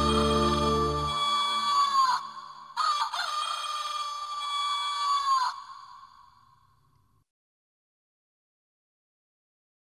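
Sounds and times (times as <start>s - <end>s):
rooster crowing: 0.0s - 6.2s.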